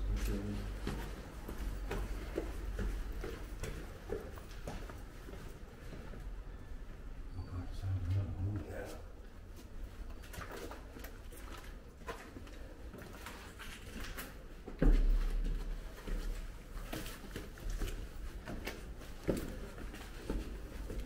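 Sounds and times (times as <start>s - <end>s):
footsteps on stairs: 0.0s - 6.3s, 9.6s - 21.0s.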